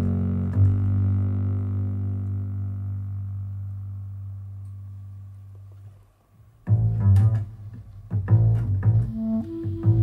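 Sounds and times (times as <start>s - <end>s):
double bass low note: 0.0s - 5.8s, 6.7s - 10.0s.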